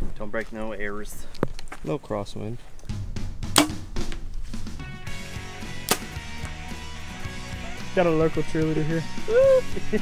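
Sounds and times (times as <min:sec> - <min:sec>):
background music: 0:02.9 - 0:10.0
arrow hitting foam target: 0:03.5 - 0:04.2, 0:05.8 - 0:06.2.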